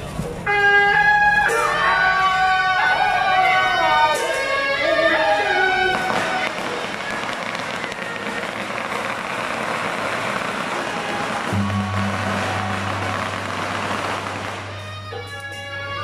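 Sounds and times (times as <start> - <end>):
firecrackers crackling: 0.0 - 16.0.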